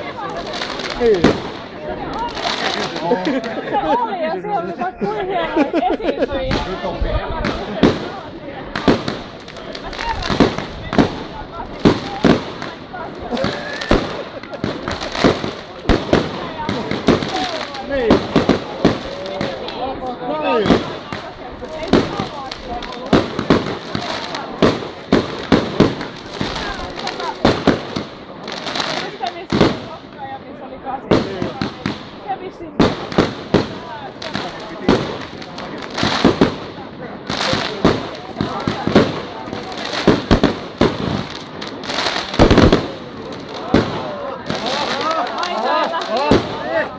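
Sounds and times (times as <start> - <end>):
fireworks bursting: 0.0 - 46.9.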